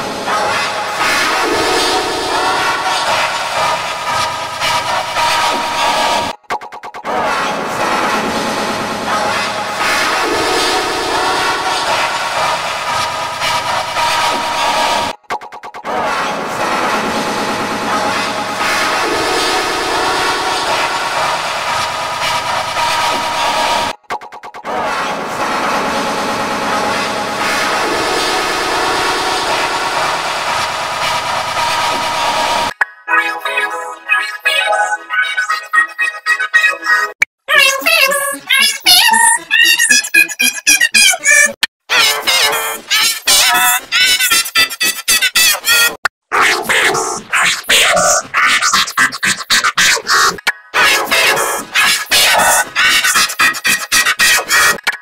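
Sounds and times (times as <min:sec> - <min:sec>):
dense wall of noise: 0:00.0 - 0:06.3, 0:07.2 - 0:15.2, 0:15.9 - 0:24.0, 0:24.7 - 0:32.7.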